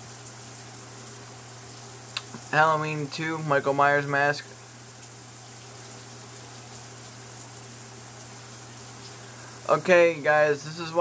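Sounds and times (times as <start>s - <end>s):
steady hiss: 6.9s - 11.0s.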